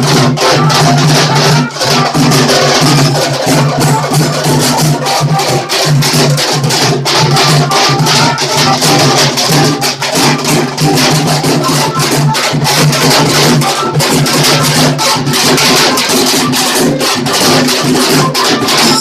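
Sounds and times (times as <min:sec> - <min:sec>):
street drum band playing: 0:00.0 - 0:19.0.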